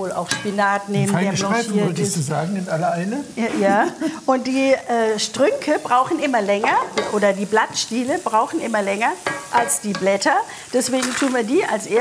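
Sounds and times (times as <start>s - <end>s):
food sizzling in a wok: 0.0s - 12.0s
person talking: 0.9s - 2.6s.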